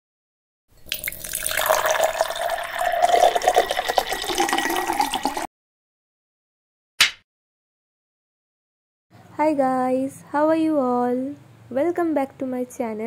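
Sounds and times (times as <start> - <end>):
liquid pouring into glass: 0.8 - 5.5.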